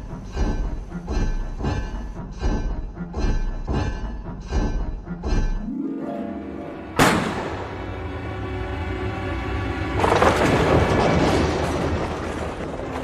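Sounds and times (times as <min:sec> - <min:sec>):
dramatic background music: 0:00.0 - 0:13.0
rifle shot: 0:07.0 - 0:07.6
timber splintering and crashing: 0:10.0 - 0:13.0.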